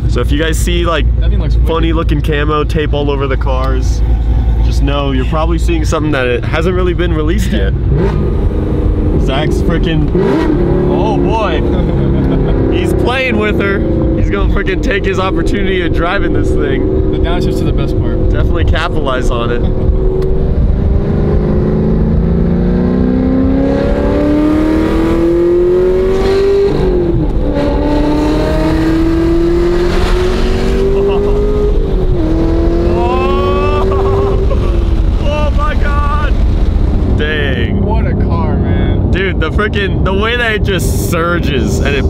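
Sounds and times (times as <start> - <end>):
car engine at full throttle: 0.0 - 42.0.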